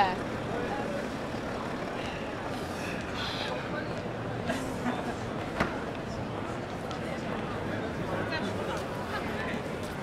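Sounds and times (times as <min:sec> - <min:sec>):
indistinct voices of passers-by: 0:00.0 - 0:10.0
rumble of city traffic: 0:00.0 - 0:10.0.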